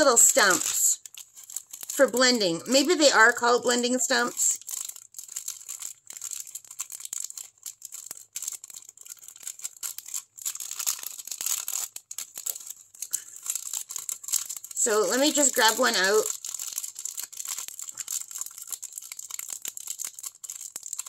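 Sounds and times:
plastic bag crinkling: 0.0 - 21.0.

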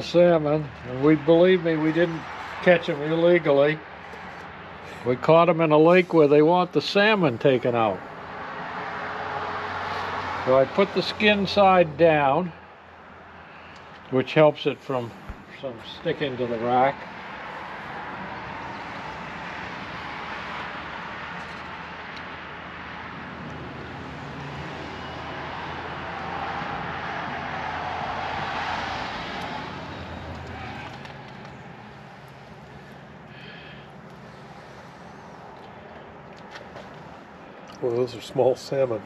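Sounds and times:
vehicle passing: 0.0 - 39.0.

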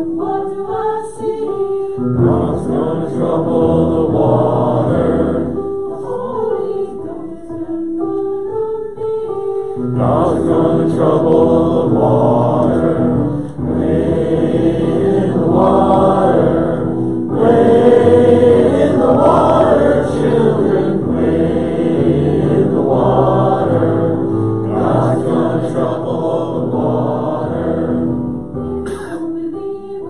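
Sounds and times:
congregation singing a hymn: 0.0 - 30.0.

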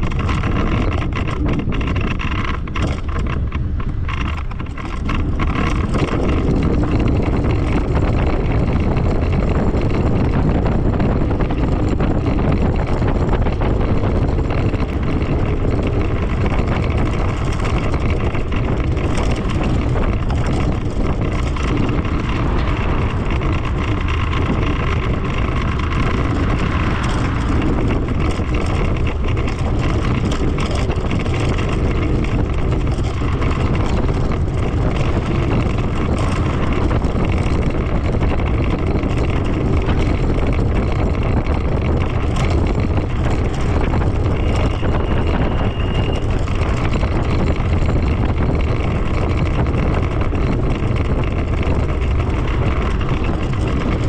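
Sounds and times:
scooter tyre and road noise: 0.0 - 54.0
wind rumble on microphone: 0.0 - 54.0.

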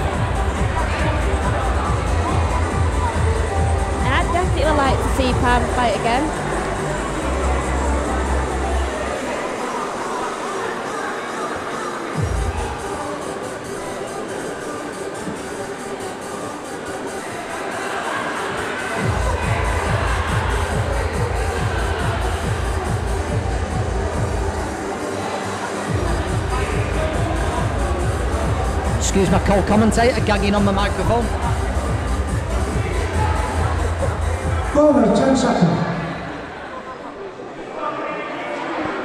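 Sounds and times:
steady bass beat: 0.0 - 8.6, 25.9 - 34.8
background music: 0.0 - 39.0.

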